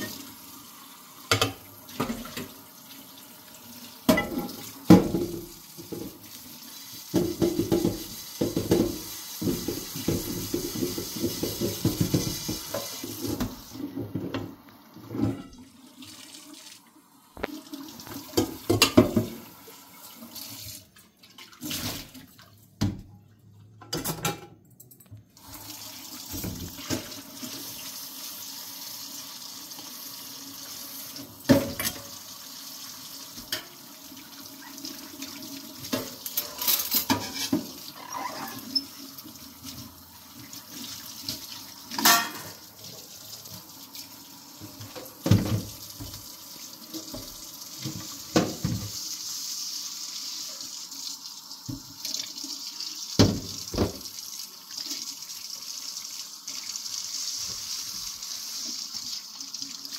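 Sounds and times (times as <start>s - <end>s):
tap water running into a sink: 0.0s - 23.1s, 25.4s - 59.9s.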